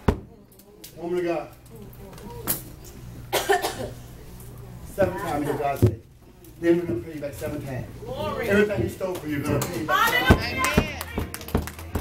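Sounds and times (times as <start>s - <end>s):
harsh cough-like vocal burst: 3.3s - 4.0s.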